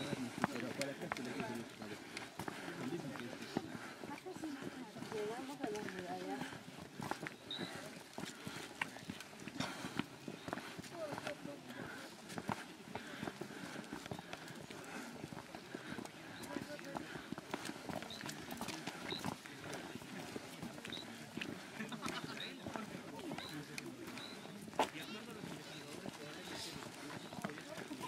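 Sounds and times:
footsteps on stone path: 0.0s - 28.0s
indistinct chatter: 0.0s - 28.0s.

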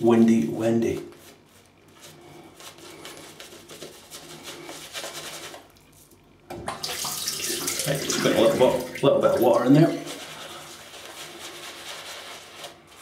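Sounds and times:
shaving brush scrubbing lather: 1.6s - 6.1s, 7.6s - 13.0s.

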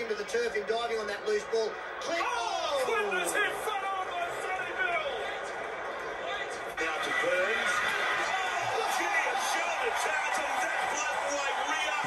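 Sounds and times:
male commentator speaking: 0.0s - 5.5s, 6.2s - 12.0s
background noise: 0.0s - 12.0s.

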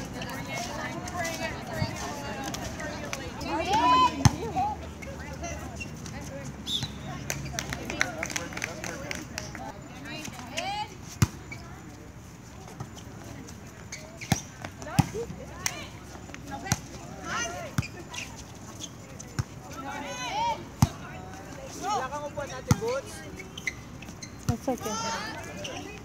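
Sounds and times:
players shouting calls: 1.3s - 5.8s, 19.7s - 21.2s, 24.5s - 26.0s.

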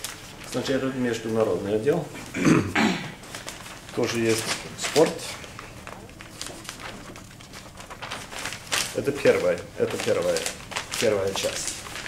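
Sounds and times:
newspaper pages rustling: 0.0s - 2.0s, 3.2s - 12.0s.

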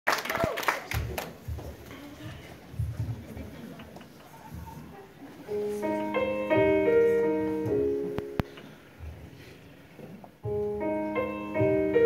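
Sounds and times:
piano chords: 5.5s - 9.3s, 10.4s - 12.0s.

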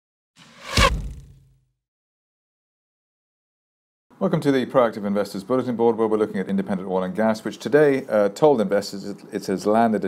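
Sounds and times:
whoosh: 0.4s - 1.5s
deep boom: 0.5s - 1.5s.

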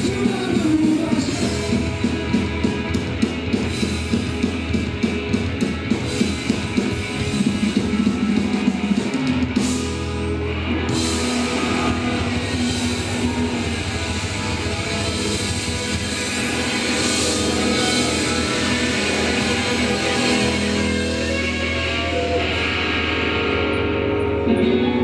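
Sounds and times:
distorted electric guitar: 0.0s - 25.0s
drum kit: 0.0s - 25.0s.

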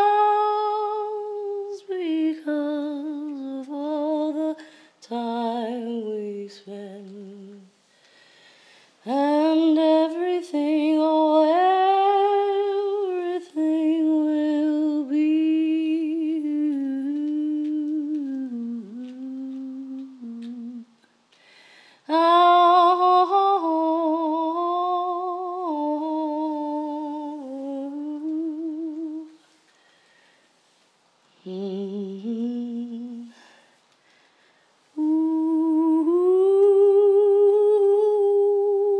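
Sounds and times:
person humming: 9.1s - 21.0s, 31.4s - 33.6s, 35.0s - 38.9s.

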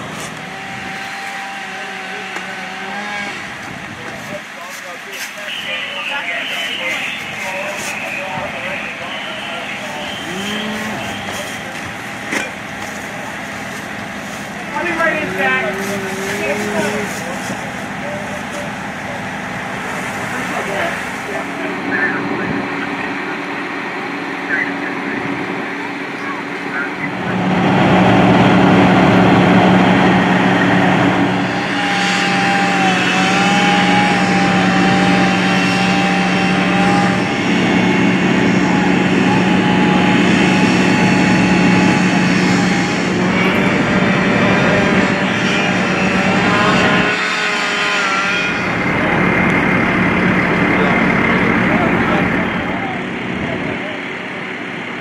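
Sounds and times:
fire engines droning: 0.0s - 55.0s
voices: 0.0s - 55.0s.

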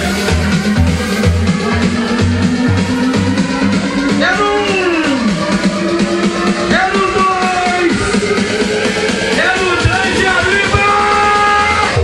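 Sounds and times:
heavy bass beat: 0.0s - 12.0s
loud dance music: 0.0s - 12.0s.

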